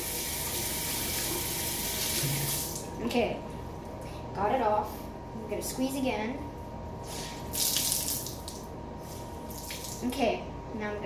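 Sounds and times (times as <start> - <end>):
tap water running into sink: 0.0 - 2.8
towel rinsed and squeezed: 7.4 - 8.7, 9.5 - 10.0.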